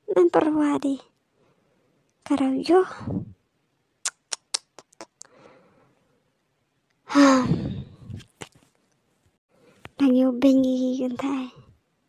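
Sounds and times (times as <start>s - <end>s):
woman's breathy exclamation: 7.1s - 8.0s.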